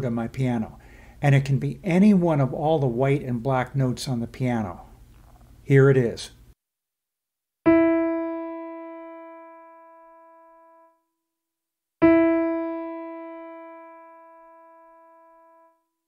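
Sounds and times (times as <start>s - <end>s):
piano note ringing: 7.7s - 11.0s, 12.0s - 15.8s.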